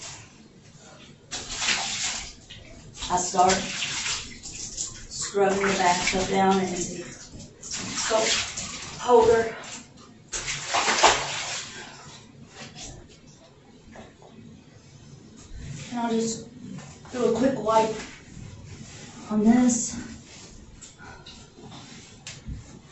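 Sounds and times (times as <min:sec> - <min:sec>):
water swishing: 0:00.0 - 0:13.2, 0:15.6 - 0:22.9
scrubbing a bathtub: 0:00.0 - 0:14.2, 0:14.8 - 0:22.9.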